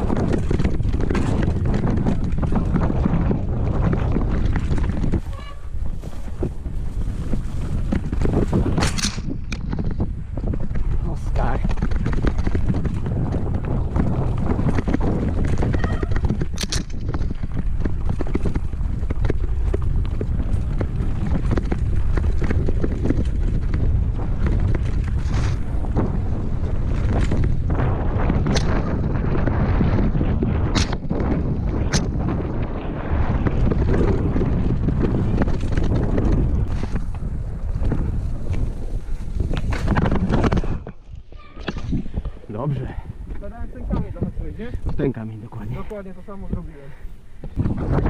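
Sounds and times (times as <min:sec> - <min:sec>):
bike knocking on bumps: 0:00.0 - 0:45.2
mountain bike rumbling and rattling: 0:00.0 - 0:48.0
wind buffeting microphone: 0:00.0 - 0:48.0.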